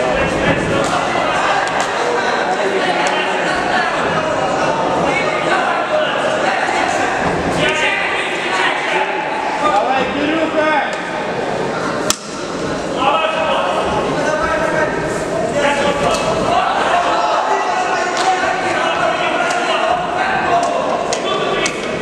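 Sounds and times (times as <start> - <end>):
voices calling out in echoing hall: 0.0 - 22.0.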